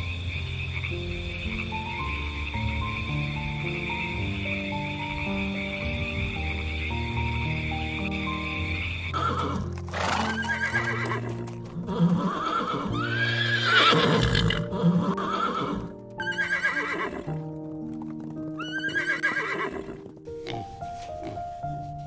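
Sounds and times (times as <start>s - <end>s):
background music with held notes: 0.0s - 22.0s
hoofbeats: 1.4s - 22.0s
horses whinnying: 9.1s - 17.5s, 18.5s - 20.6s.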